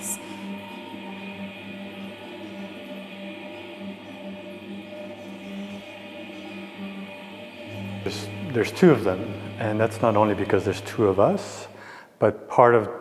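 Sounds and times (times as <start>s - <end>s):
layered drone of held tones: 0.0s - 12.0s.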